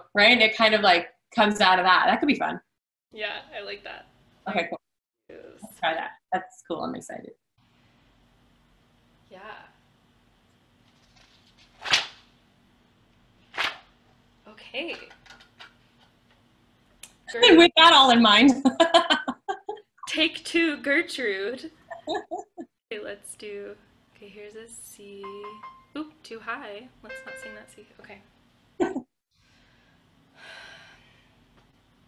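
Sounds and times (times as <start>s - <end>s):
person speaking: 17.1s - 20.3s, 21.9s - 22.7s, 25.2s - 25.9s, 27.0s - 27.9s
woman's intake of breath: 29.4s - 31.3s.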